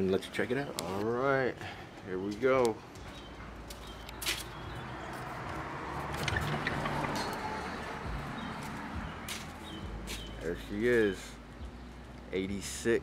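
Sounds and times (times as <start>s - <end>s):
outdoor ambience: 0.0s - 13.0s.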